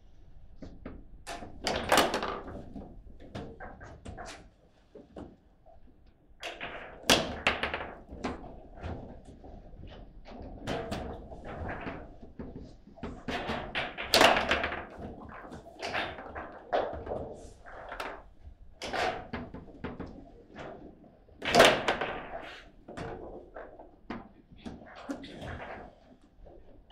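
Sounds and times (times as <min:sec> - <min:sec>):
table football knocks and clacks: 0:00.6 - 0:05.8, 0:06.4 - 0:26.9.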